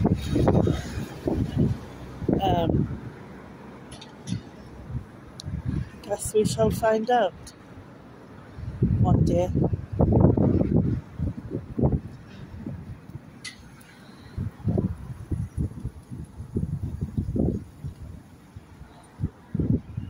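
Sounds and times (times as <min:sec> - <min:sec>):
wind buffeting microphone: 0:00.0 - 0:07.5, 0:08.4 - 0:20.0.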